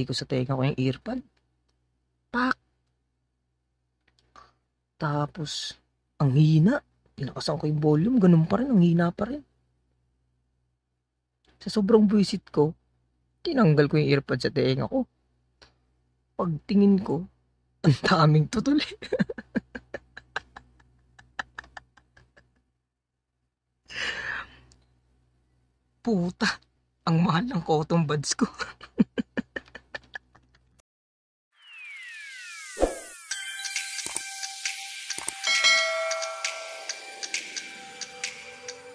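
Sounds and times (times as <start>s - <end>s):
man laughing: 18.8s - 22.6s, 28.5s - 30.8s
notification bell ding: 35.5s - 36.6s.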